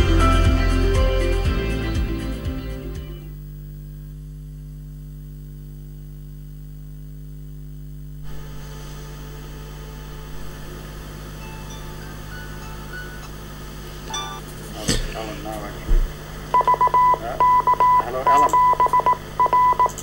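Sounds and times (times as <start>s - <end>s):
electrical mains hum: 2.8s - 20.0s
room noise: 3.2s - 20.0s.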